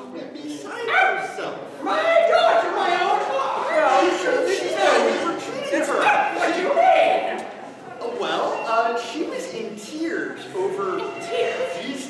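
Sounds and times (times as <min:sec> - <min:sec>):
stage voices: 0:00.0 - 0:12.0.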